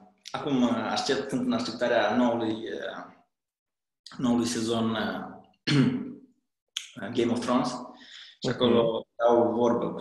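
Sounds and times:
man speaking: 6.8 - 10.0.

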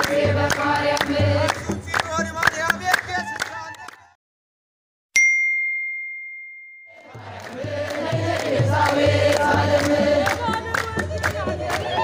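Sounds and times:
crowd singing a hymn: 0.0 - 1.8, 7.0 - 12.0
hand claps: 0.0 - 4.0, 7.2 - 12.0.

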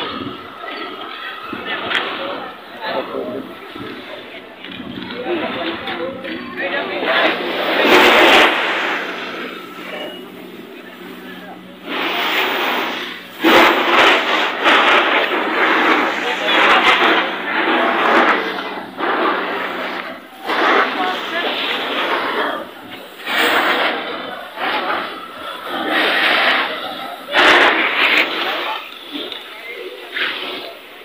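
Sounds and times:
people talking: 0.0 - 31.0.

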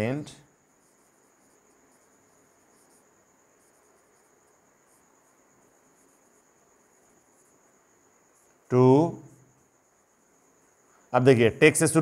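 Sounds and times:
faint high-pitched whine: 0.0 - 12.0
marker writing on whiteboard: 0.8 - 7.7.

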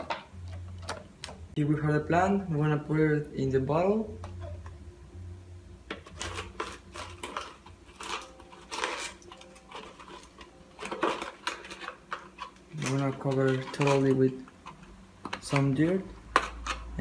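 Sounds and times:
plastic bottle crackling: 5.9 - 15.7.

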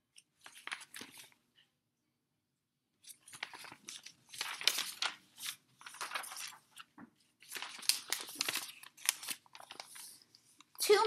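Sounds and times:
paper pages rustling: 0.1 - 1.6, 3.0 - 11.0.

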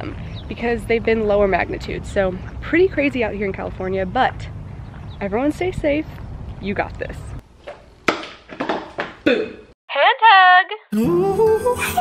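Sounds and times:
knocks and thumps: 7.7 - 9.2.

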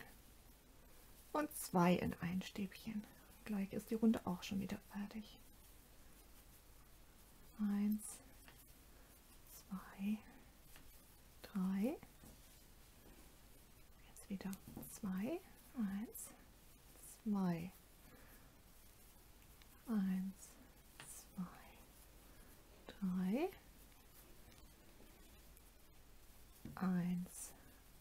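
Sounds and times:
soft breath: 5.4 - 25.6.

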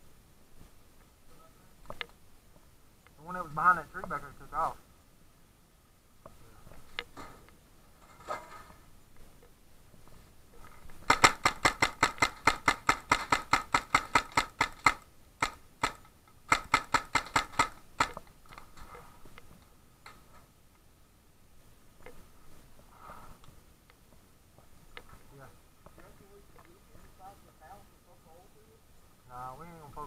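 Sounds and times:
paintball marker firing: 11.0 - 18.3.

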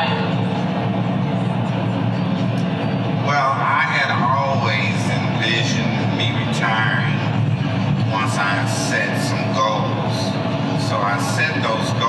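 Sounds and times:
car cabin engine and road drone: 0.0 - 12.0.

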